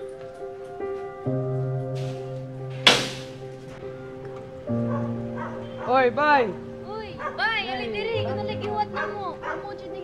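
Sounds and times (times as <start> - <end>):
background music: 0.0 - 10.0
dog yelping: 4.9 - 6.0, 7.2 - 7.5, 8.9 - 9.8.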